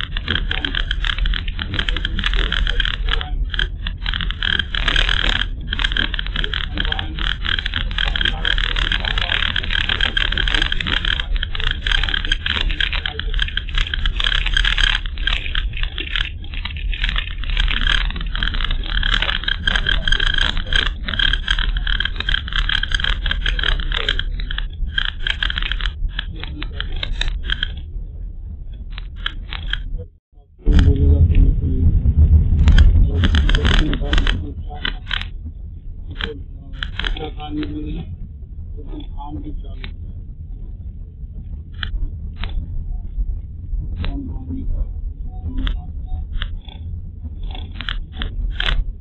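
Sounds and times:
constant high hiss: 0:00.0 - 0:31.0, 0:32.6 - 0:49.0.

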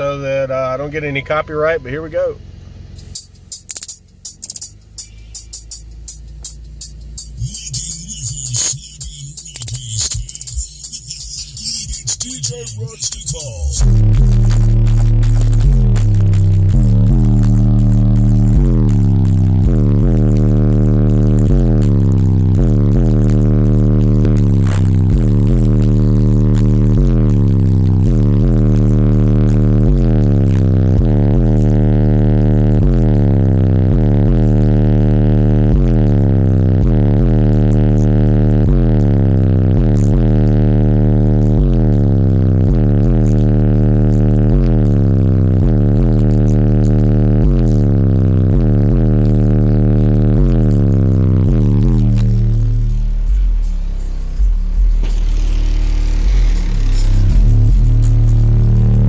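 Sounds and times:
deep bass music: 0:00.0 - 0:59.0.

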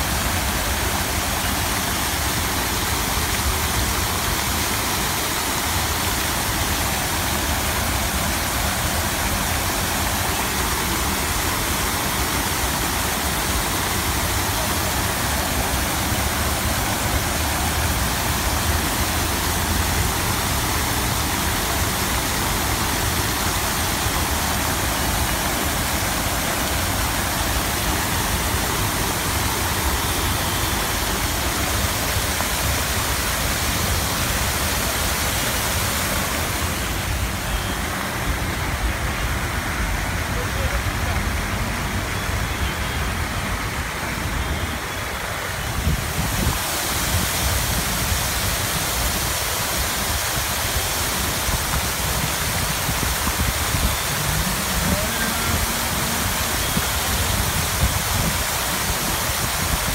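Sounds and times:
fountain water splashing: 0:00.0 - 0:59.9.

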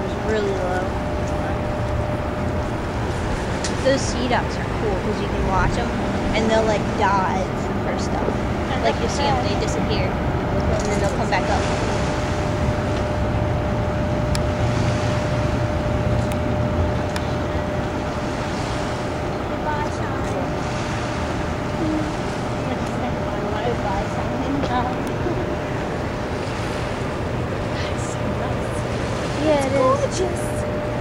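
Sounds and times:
river water rushing: 0:00.0 - 0:13.6, 0:14.5 - 0:31.0
thin steady hum: 0:00.0 - 0:31.0
wind buffeting microphone: 0:00.0 - 0:31.0.

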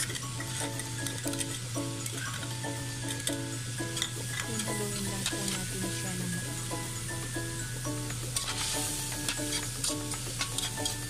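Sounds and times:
background music: 0:00.0 - 0:11.0
food sizzling in a wok: 0:00.0 - 0:11.0
utensil clicking against pan: 0:03.1 - 0:05.8, 0:08.1 - 0:11.0.

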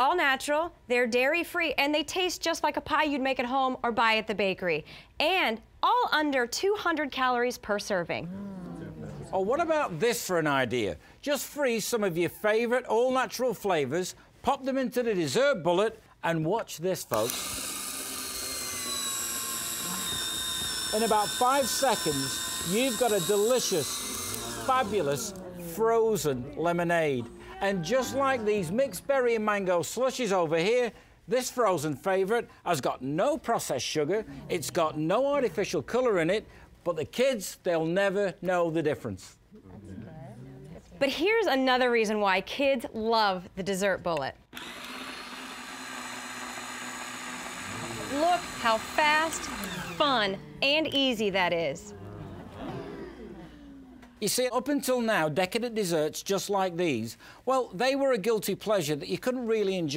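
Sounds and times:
electric motor whining: 0:17.1 - 0:25.9, 0:44.5 - 0:50.7.

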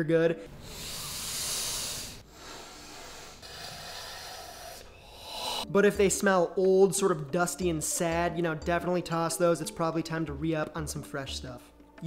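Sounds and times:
person sniffing: 0:00.5 - 0:05.7.

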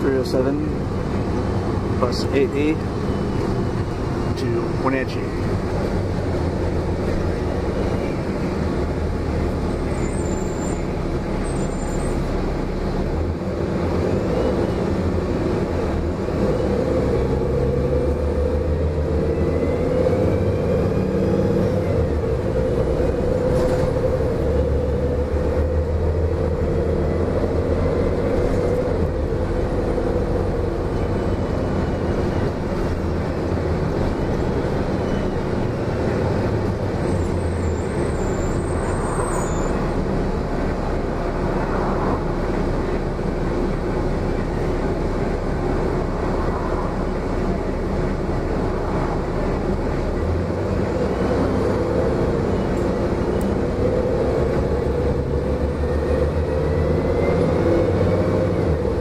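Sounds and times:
bus engine rumble: 0:00.0 - 0:59.0
road noise: 0:00.0 - 0:59.0.

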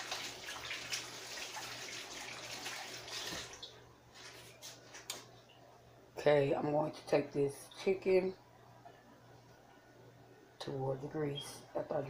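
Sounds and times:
water running from tap: 0:00.0 - 0:03.8.

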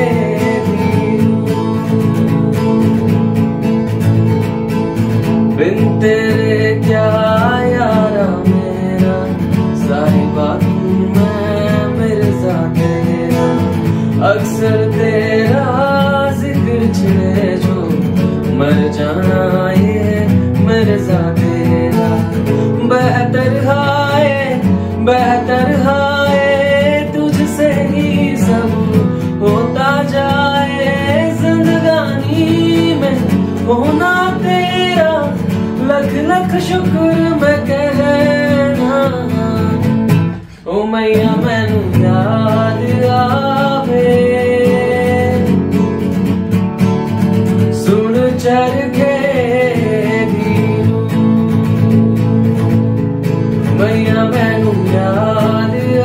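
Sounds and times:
man singing: 0:00.0 - 0:04.0, 0:05.2 - 0:46.4, 0:47.5 - 0:56.0
acoustic guitar: 0:00.0 - 0:56.0.

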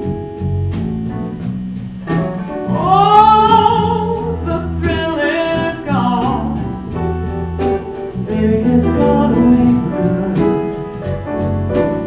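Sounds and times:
live band with electric bass: 0:00.0 - 0:12.0
woman singing blues: 0:02.6 - 0:07.0, 0:08.2 - 0:11.0.

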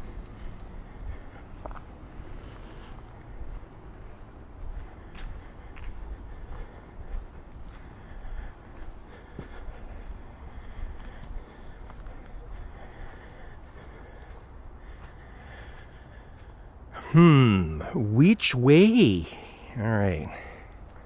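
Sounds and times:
person breathing: 0:00.0 - 0:03.2, 0:04.1 - 0:18.2, 0:19.0 - 0:21.0
footsteps on leafy dirt trail: 0:00.0 - 0:16.6.

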